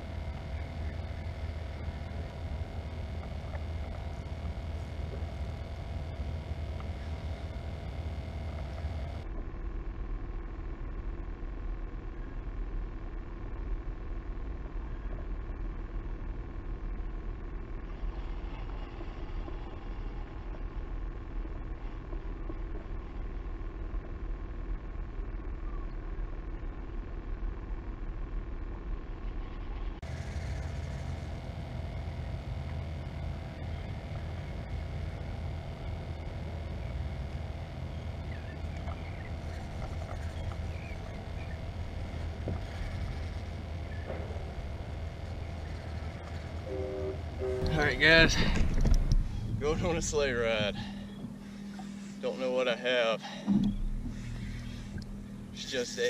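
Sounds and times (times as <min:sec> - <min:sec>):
wind rumble on microphone: 0:17.8 - 0:51.4.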